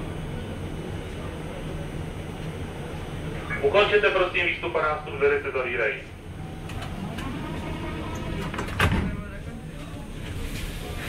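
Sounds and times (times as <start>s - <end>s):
low station rumble: 0.0s - 11.0s
train doors sliding shut: 6.5s - 11.0s.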